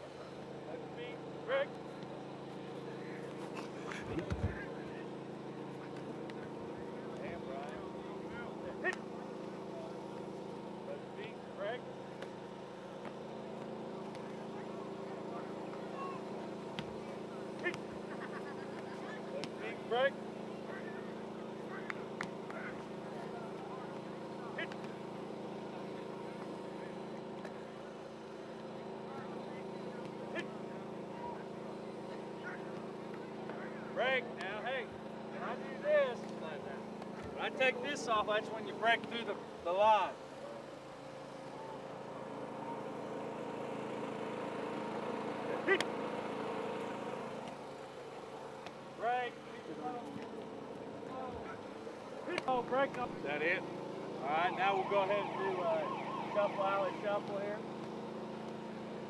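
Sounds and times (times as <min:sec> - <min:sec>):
steady low hum: 0:00.0 - 0:56.2
distant shouts and voices: 0:00.0 - 0:59.0.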